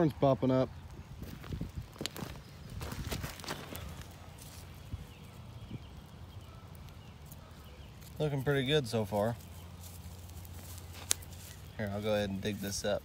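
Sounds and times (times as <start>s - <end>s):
footsteps on loose soil: 1.1s - 13.0s.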